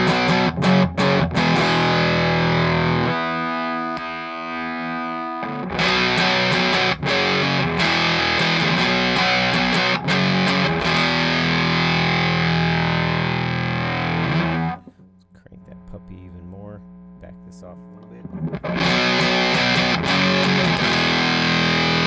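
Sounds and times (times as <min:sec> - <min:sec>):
fuzzed electric guitar chords: 0:00.0 - 0:22.0.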